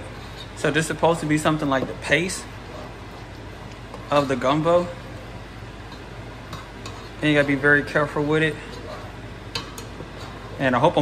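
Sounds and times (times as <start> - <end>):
steady low hum: 0.0 - 11.0
spatula scraping roux in pan: 5.7 - 9.2.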